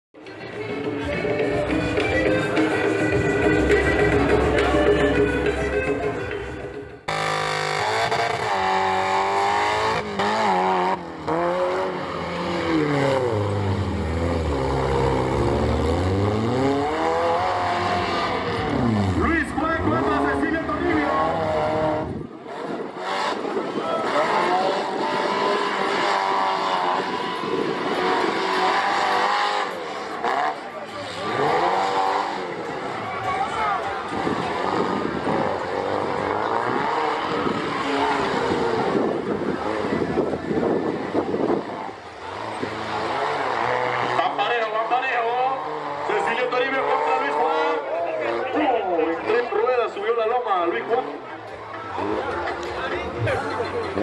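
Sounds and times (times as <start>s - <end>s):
off-road vehicle engines revving: 0.6s - 54.0s.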